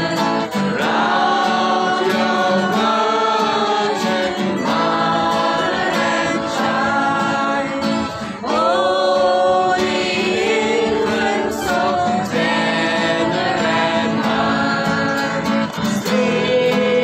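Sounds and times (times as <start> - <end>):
acoustic guitars: 0.0 - 17.0
group singing a carol: 0.0 - 17.0.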